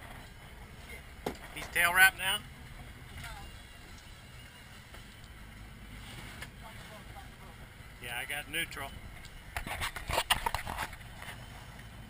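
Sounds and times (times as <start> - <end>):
boat engine rumbling: 0.0 - 12.0
wind and water along hull: 0.0 - 12.0.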